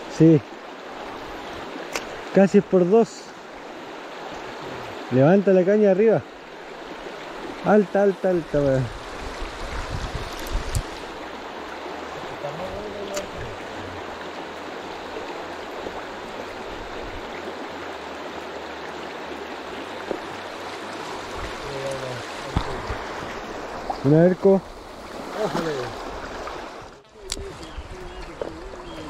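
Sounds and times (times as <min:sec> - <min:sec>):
river water rushing over stones: 0:00.0 - 0:29.0.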